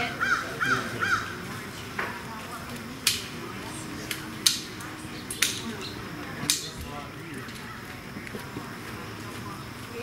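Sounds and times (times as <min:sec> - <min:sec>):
crow cawing: 0:00.0 - 0:01.4.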